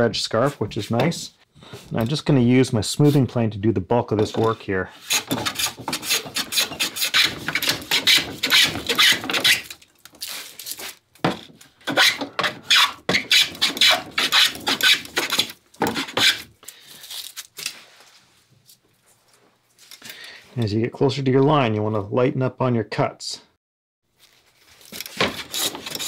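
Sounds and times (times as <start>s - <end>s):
hand plane shaving wood: 5.0s - 9.7s, 11.9s - 16.5s, 25.0s - 26.0s.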